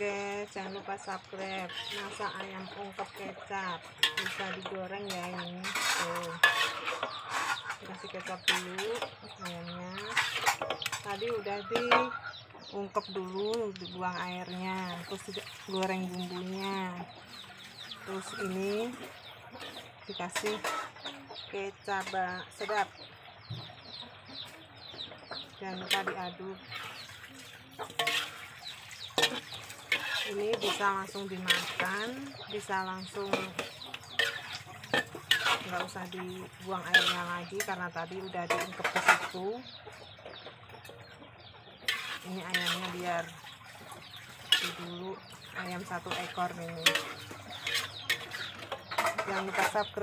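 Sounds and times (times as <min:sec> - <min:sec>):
birds chirping: 0:00.0 - 0:50.0
metal spatula scraping a wok: 0:00.4 - 0:12.1, 0:19.6 - 0:21.1, 0:25.8 - 0:27.1, 0:27.7 - 0:39.5, 0:41.8 - 0:50.0.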